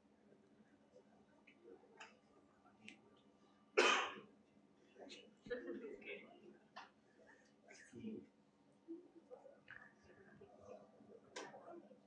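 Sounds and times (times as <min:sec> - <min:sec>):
person coughing: 0:03.8 - 0:04.2.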